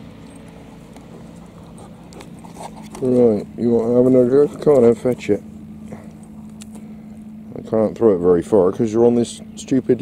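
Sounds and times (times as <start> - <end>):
motorboat engine drone: 0.0 - 10.0.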